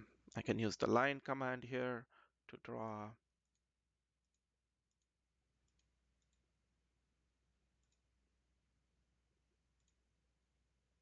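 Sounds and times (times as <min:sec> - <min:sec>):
computer mouse clicks: 0:03.4 - 0:06.4, 0:07.8 - 0:08.1, 0:09.8 - 0:10.0.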